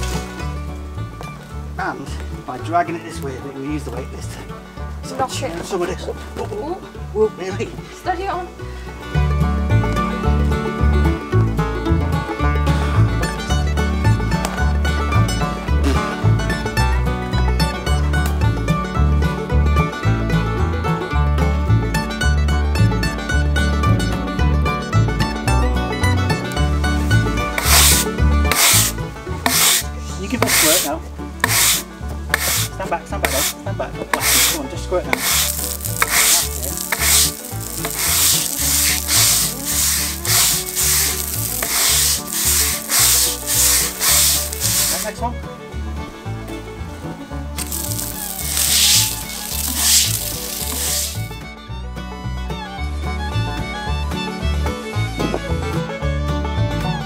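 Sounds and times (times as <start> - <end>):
broom scrubbing wet stone: 27.5 - 45.2, 47.6 - 51.3.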